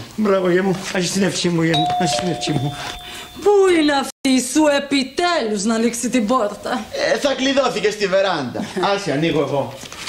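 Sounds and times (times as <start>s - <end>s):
two-tone doorbell chime: 1.8s - 4.1s.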